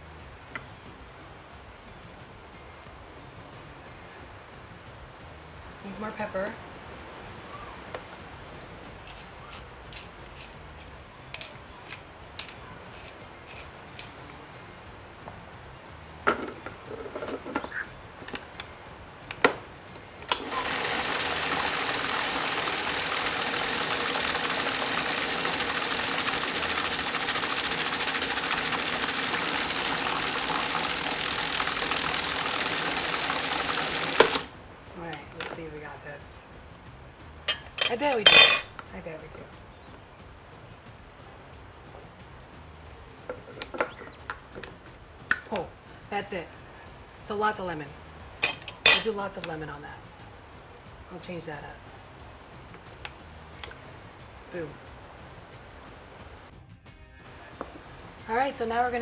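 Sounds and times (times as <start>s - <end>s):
pepper mill grinding clicks: 9.1s - 14.4s
food processor motor running: 20.3s - 34.5s
food processor stopping clunk: 20.3s - 34.5s.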